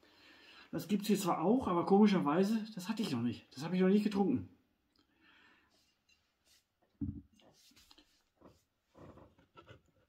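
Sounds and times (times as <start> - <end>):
glass bottle knocking on table: 7.0 - 7.3.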